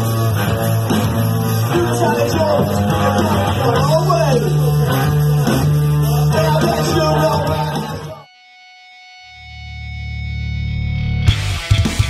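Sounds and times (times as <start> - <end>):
metal band playing: 0.0 - 8.3, 8.9 - 12.0.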